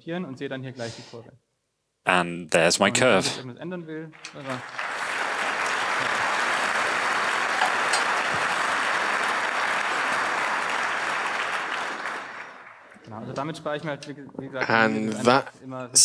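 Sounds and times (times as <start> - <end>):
audience applause: 4.2 - 13.1.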